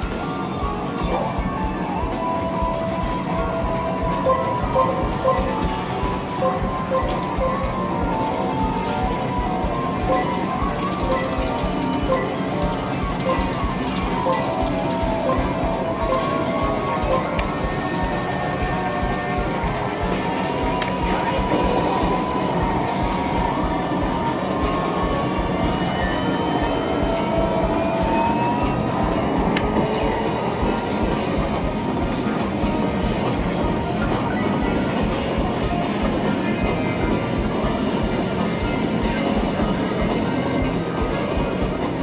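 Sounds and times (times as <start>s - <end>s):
arcade machine music and effects: 0.0s - 42.0s
continuous rumble: 0.0s - 42.0s.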